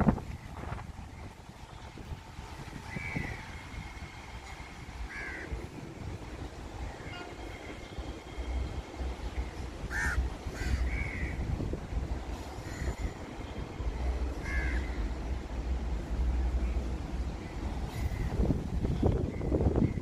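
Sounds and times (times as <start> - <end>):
crows cawing: 5.1 - 5.6, 9.9 - 11.4, 14.4 - 15.0.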